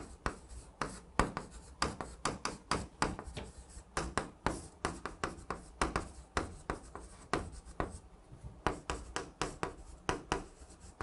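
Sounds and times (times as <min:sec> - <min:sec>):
chalk tapping and scraping on chalkboard: 0:00.0 - 0:11.0.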